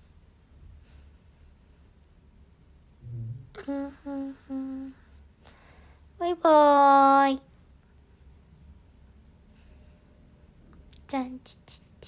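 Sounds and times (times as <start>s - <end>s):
woman humming: 3.0s - 5.0s.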